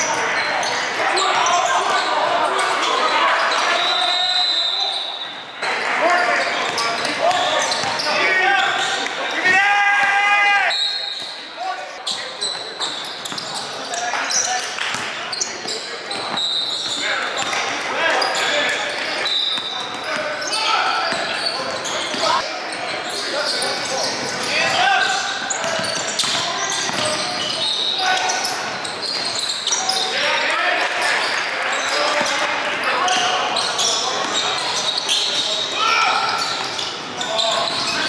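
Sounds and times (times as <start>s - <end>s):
sneaker squeaks: 0.0s - 9.6s, 10.6s - 38.0s
voices calling out: 0.0s - 38.0s.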